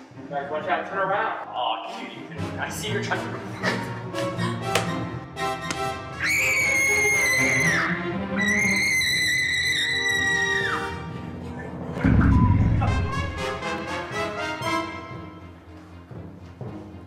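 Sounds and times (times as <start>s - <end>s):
background music: 0.0s - 17.0s
girl screaming: 6.2s - 10.9s
loud low thud: 12.0s - 13.4s.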